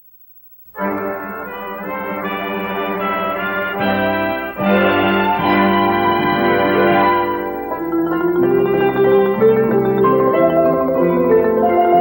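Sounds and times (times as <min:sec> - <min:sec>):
instrumental sustained chords: 0:00.7 - 0:12.0.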